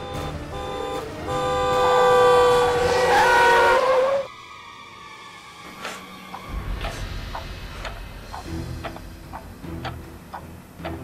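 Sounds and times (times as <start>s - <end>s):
truck horn honking: 0.0s - 4.3s.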